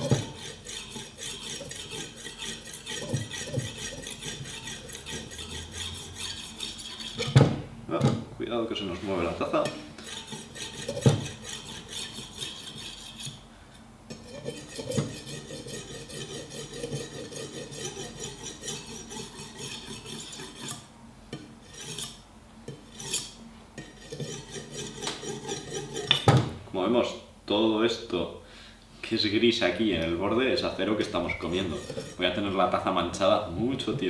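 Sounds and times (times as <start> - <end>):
knife scraping on ceramic: 0.0 - 7.4, 9.6 - 13.4, 14.1 - 26.3, 31.1 - 32.6.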